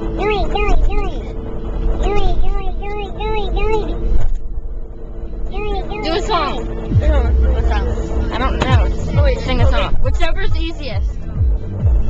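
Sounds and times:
car cabin rumble: 0.0 - 12.0
girl singing nonsense syllables: 0.2 - 1.3, 2.0 - 4.0.

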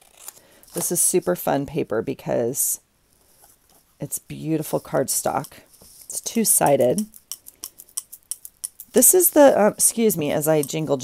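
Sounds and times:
beaded bracelets clicking: 6.8 - 9.3.

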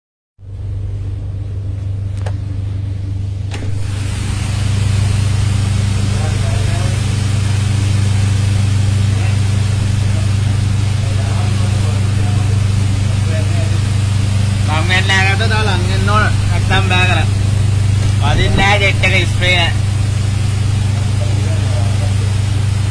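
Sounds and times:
boat engines droning: 0.4 - 22.9
water spray and wind hiss: 3.7 - 22.9
faint voices: 9.0 - 17.5.

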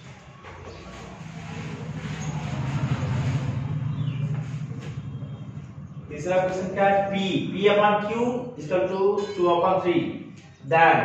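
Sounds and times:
vehicle engine passing by: 0.0 - 7.6.

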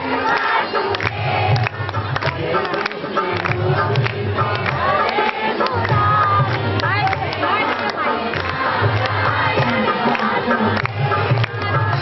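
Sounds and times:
crowd cheering and calling out: 0.0 - 12.0
music: 0.0 - 12.0.

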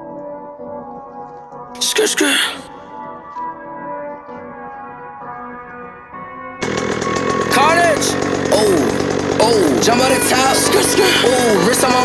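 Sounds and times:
dirt bike engine running: 6.6 - 12.0
rap music: 9.8 - 12.0.

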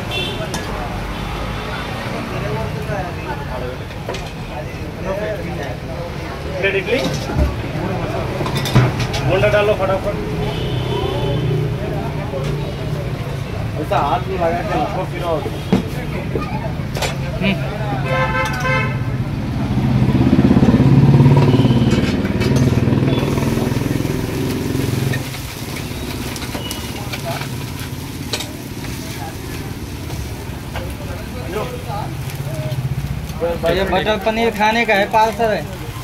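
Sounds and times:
motorcycle engine running: 19.2 - 26.6.

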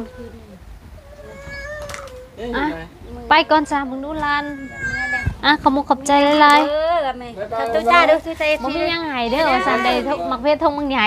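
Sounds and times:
cat meowing: 1.0 - 2.4, 4.3 - 5.4.

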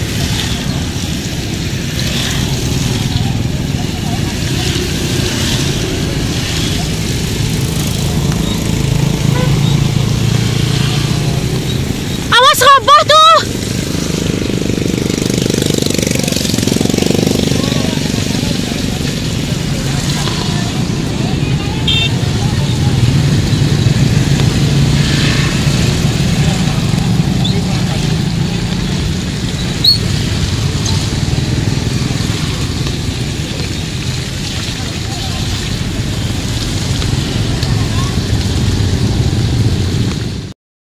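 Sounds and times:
motorbike traffic: 0.0 - 40.6
faint voices: 15.8 - 24.4.

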